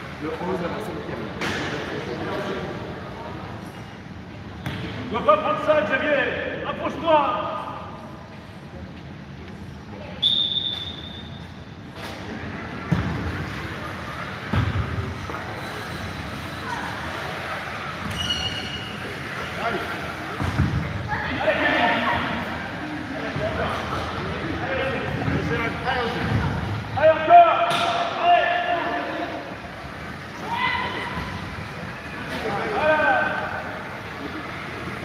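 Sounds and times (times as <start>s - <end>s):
voices calling out in hall: 9.5s - 35.0s.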